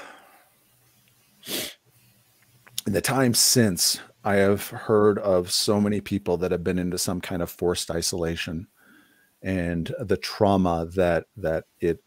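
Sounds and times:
man's sharp breath: 0.0s - 0.5s, 1.4s - 1.8s
man speaking: 2.8s - 8.7s, 9.4s - 12.0s.

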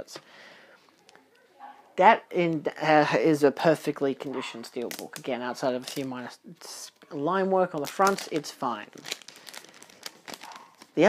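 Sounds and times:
faint plastic clicks: 0.2s - 1.3s
plastic crinkling: 0.8s - 1.3s, 4.7s - 11.0s.

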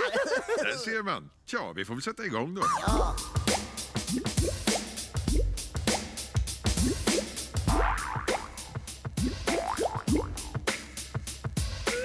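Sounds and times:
playful music with steady beat: 2.6s - 12.0s
bubbly bloop glides: 9.6s - 10.4s.

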